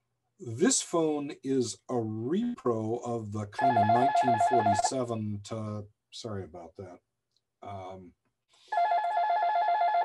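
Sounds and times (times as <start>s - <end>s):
electronic telephone ringer warbling: 3.6s - 4.9s, 8.7s - 10.0s.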